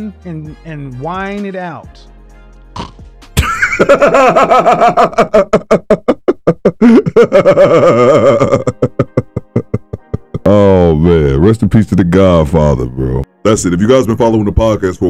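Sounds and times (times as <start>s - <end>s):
men laughing hard: 3.4s - 10.5s.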